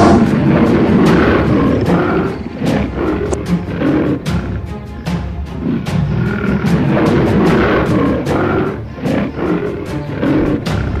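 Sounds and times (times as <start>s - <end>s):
tiger roaring: 0.0s - 4.8s, 5.6s - 11.0s
dramatic film score music: 0.0s - 11.0s.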